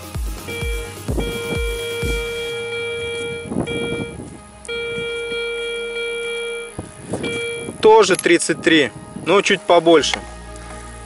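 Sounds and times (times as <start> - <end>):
metal detector long beeps: 0.4 - 8.1.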